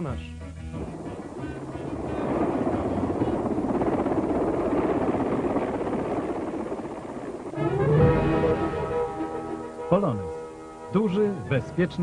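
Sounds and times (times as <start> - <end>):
helicopter turbine noise: 0.0 - 12.0
helicopter rotor chop: 0.8 - 12.0.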